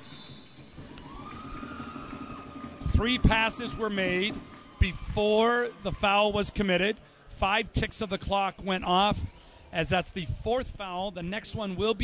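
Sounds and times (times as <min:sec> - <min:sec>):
referee's whistle blast: 0:00.0 - 0:01.1
low steady whistling tone: 0:00.0 - 0:03.1.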